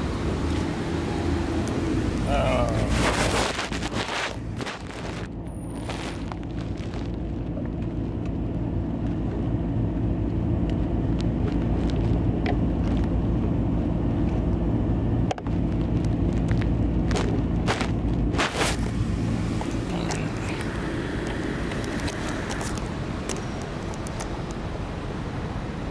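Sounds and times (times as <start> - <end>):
car engine running: 0.0 - 25.9
camera rubbing against fabric: 2.8 - 7.2, 17.7 - 20.7
sharp clicks: 19.6 - 24.6.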